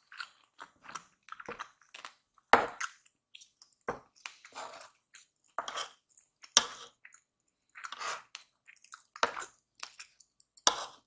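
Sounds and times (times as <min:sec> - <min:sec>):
close chewing: 0:07.0 - 0:10.6.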